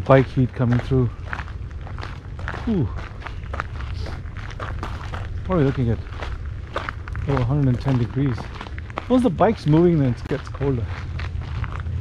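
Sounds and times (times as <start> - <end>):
footsteps crunching on gravel: 0.0 - 12.0
steady low rumble: 0.0 - 12.0.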